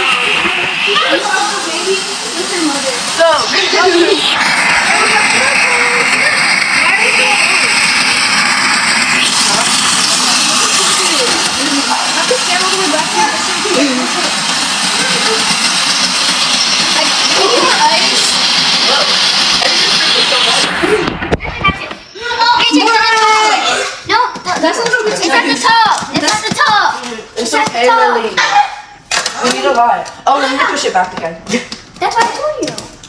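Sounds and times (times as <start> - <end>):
snow cone machine grinding ice: 0.0 - 21.2, 23.7 - 28.0.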